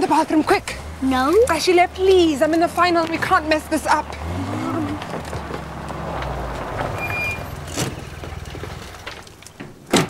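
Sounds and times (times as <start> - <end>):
vehicle engine rumbling: 0.0 - 9.8
road noise: 0.0 - 9.9.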